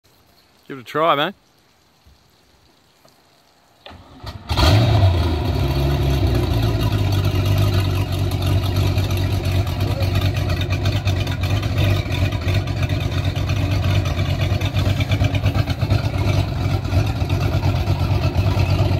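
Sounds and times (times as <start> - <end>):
boat engine cranking and idling: 3.8 - 18.9.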